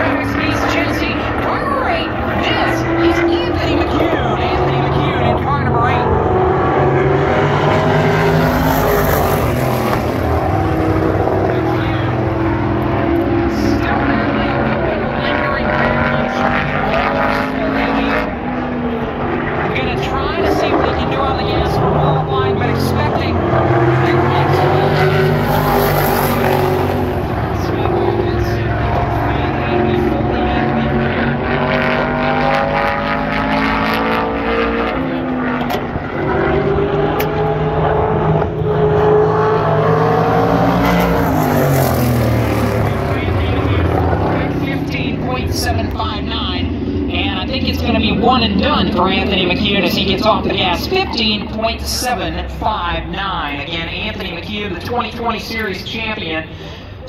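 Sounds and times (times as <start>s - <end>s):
race car engine at full throttle: 0.0s - 57.0s.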